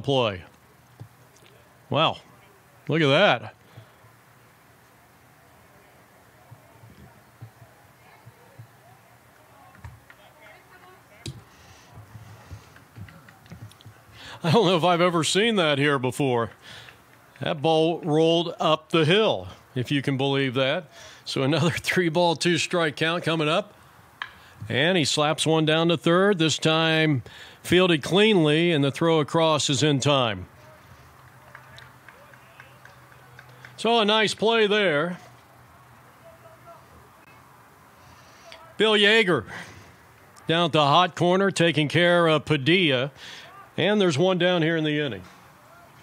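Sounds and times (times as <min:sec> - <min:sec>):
distant voices: 0:00.0 - 0:46.0.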